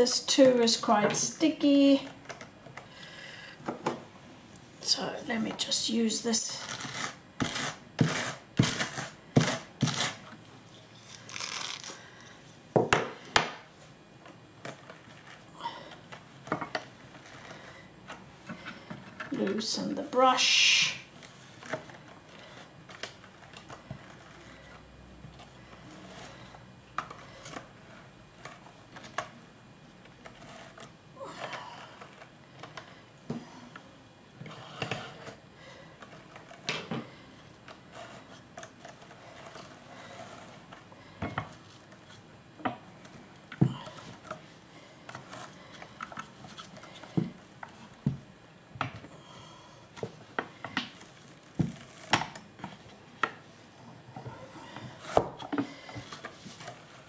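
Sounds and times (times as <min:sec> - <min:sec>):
fibre rustling against carding teeth: 0:06.3 - 0:12.4, 0:21.1 - 0:33.1, 0:34.7 - 0:48.4.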